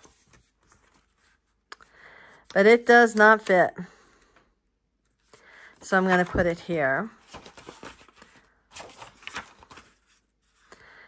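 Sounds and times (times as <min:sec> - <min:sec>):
paper rustling and tapping: 0:06.0 - 0:10.0.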